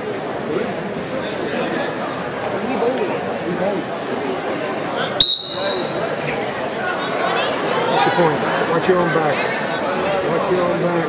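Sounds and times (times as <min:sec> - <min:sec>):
spectators chatter: 0:00.0 - 0:11.0.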